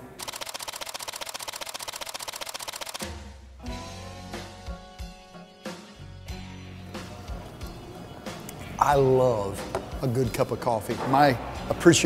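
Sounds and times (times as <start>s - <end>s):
rapid mechanical clicking: 0.2s - 3.0s.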